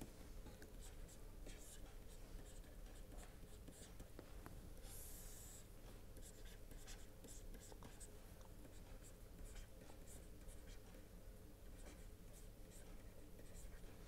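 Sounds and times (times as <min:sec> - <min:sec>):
stylus tapping and scratching on tablet: 0:00.0 - 0:11.1, 0:11.7 - 0:14.0
low steady hum: 0:00.0 - 0:14.0.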